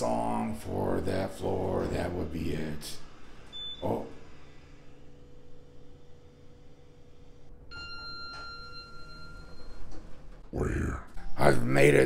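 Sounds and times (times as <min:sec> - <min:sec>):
low hum in elevator: 0:00.0 - 0:12.0
elevator arrival chime: 0:07.7 - 0:10.4.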